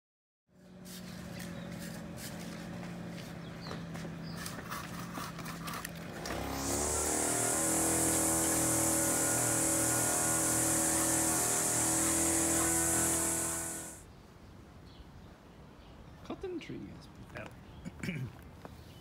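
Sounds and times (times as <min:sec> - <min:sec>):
chainsaw sawing wood: 0:04.4 - 0:14.0.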